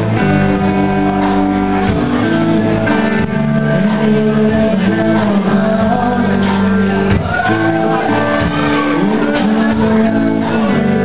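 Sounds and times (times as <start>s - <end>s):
guitar: 0.0s - 11.0s
live band playing: 0.0s - 11.0s
person singing: 0.0s - 11.0s.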